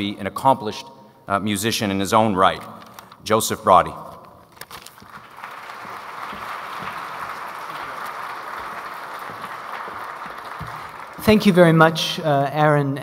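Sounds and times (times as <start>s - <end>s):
audience applauding: 5.0s - 11.8s.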